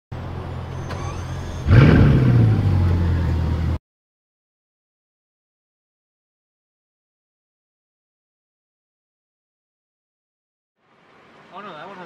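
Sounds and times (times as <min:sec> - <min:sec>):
car engine revving and idling: 0:00.2 - 0:03.8.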